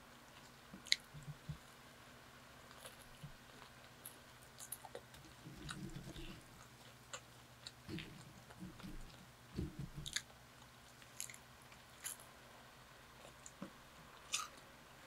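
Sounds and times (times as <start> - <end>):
chewing french fries: 2.6 - 12.4
soft mouth sounds: 4.7 - 10.3.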